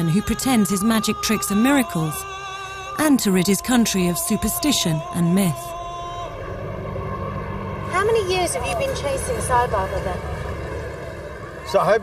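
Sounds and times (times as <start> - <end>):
general hum: 0.0 - 12.0
traffic rumble: 0.0 - 12.0.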